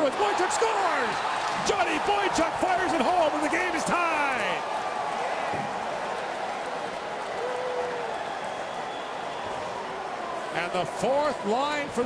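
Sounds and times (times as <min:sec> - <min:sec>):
arena crowd hubbub: 0:00.0 - 0:12.0.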